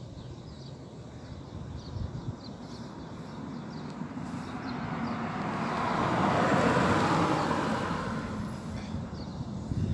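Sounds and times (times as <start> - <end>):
vehicle passing: 2.9 - 9.9.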